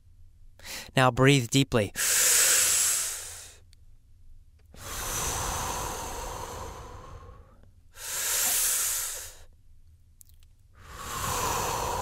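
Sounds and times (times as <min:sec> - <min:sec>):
man breathing deeply: 0:00.6 - 0:00.9, 0:02.0 - 0:03.6, 0:04.7 - 0:09.5, 0:10.7 - 0:12.0.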